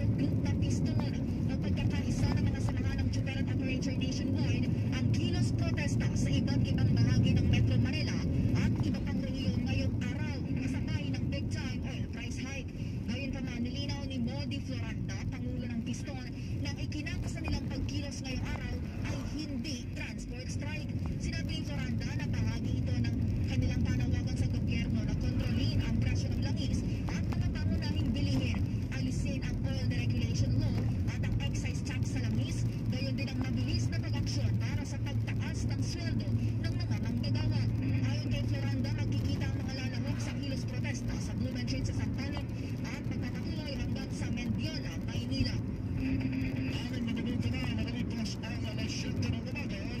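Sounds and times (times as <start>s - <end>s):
car engine and road drone: 0.0s - 50.0s.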